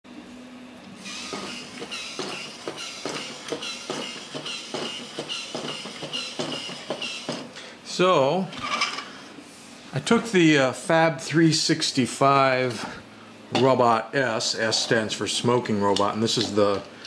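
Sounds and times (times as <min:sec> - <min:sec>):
small gear motor whirring: 0:01.0 - 0:07.3.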